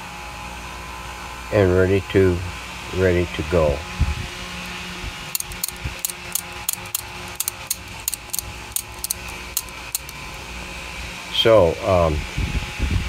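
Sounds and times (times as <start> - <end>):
fan humming: 3.0 - 11.8.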